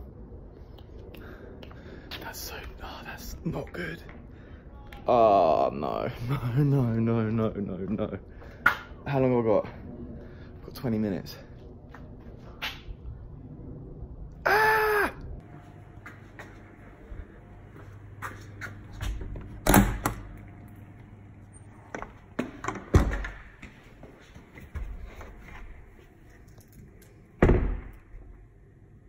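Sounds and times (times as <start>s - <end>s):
loud door thumps: 27.4s - 28.2s.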